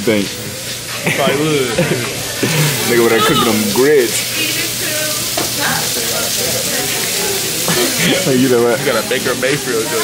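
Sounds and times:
stove and griddle sizzling: 0.0s - 10.0s.

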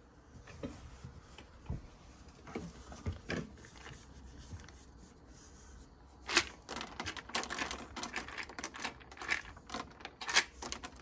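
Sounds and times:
peanuts pattering on wooden boards: 6.2s - 11.0s
peanuts rattling in plastic jar: 6.2s - 11.0s.

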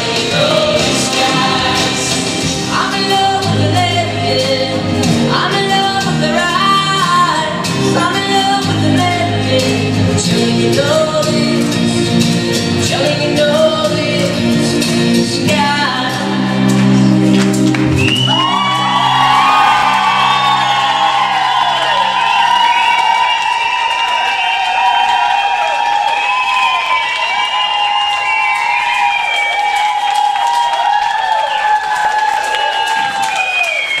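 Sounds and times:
audience cheering and applauding: 0.0s - 8.7s, 16.1s - 34.0s.

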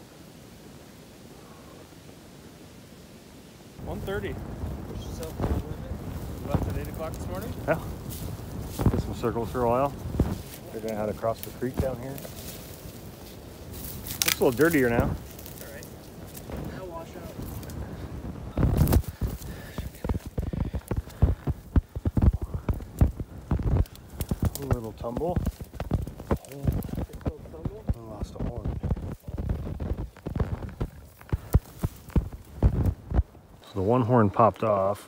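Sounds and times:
footsteps crunching dry brush: 3.8s - 33.6s
faint voices: 3.8s - 35.0s.

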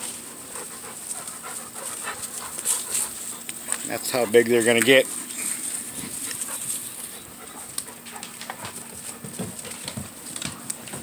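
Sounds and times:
puppies panting: 0.0s - 11.0s.

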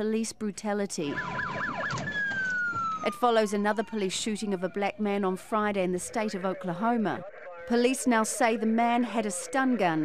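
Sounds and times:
police siren: 1.0s - 10.0s.

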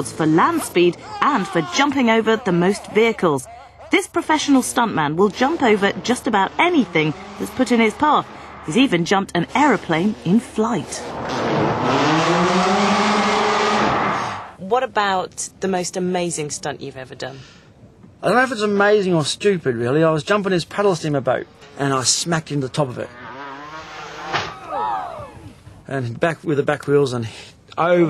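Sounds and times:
quad bike engine at high revs: 5.3s - 8.7s, 22.8s - 24.5s
vehicle crash: 5.3s - 14.5s, 21.5s - 24.8s
rising and falling pitched tones: 6.2s - 14.4s.

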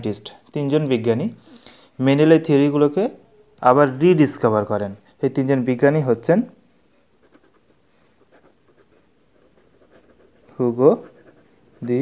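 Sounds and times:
pen scratching on paper: 7.2s - 12.0s.

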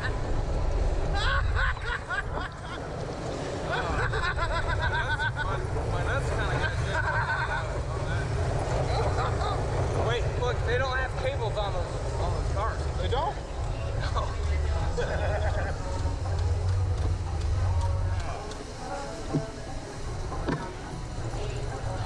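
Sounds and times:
steady low rumble: 0.0s - 22.0s
men laughing: 1.0s - 10.1s, 14.6s - 16.4s
men talking indistinctly: 5.1s - 22.0s.

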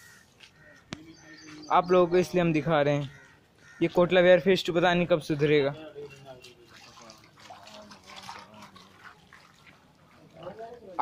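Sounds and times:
footsteps wading through water: 6.0s - 11.0s.

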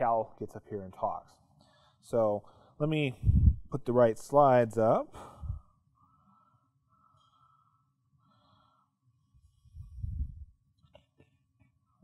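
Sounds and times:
man speaking: 0.0s - 1.4s, 2.1s - 5.3s.

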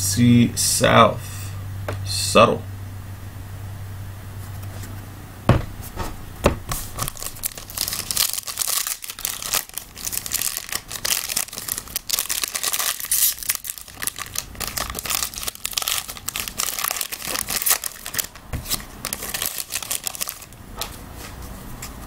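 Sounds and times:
foil wrapper crinkling and tearing: 6.8s - 20.6s.

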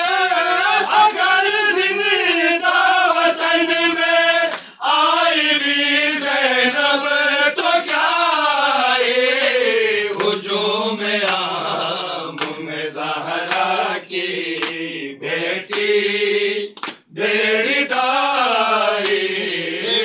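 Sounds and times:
men chanting a lament: 0.0s - 20.0s.

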